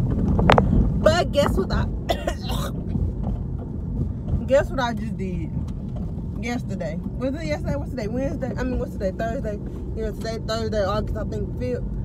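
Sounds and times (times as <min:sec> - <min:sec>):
car cabin rumble: 0:00.0 - 0:12.0
woman coughing: 0:02.1 - 0:02.8.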